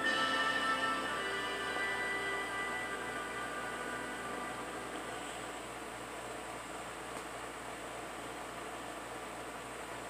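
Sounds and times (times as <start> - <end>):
steady hiss and room noise: 0.0 - 10.0.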